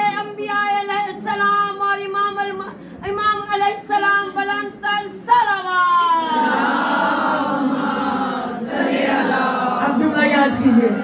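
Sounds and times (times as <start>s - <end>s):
voices chanting in unison: 6.3s - 9.9s.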